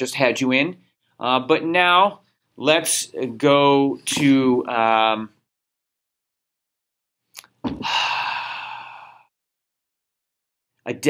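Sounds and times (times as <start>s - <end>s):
mouth click: 7.4s - 7.8s
man sighing: 7.6s - 9.3s.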